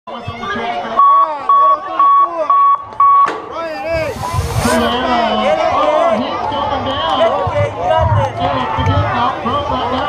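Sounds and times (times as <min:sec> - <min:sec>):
short electronic beeps: 0:01.0 - 0:03.3.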